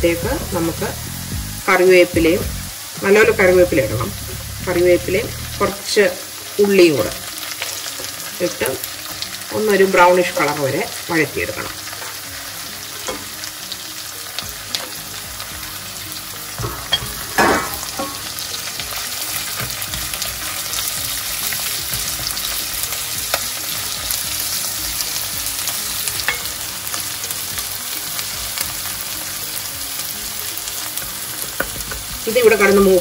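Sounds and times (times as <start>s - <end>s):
vegetables sizzling in hot oil: 0.0s - 33.0s.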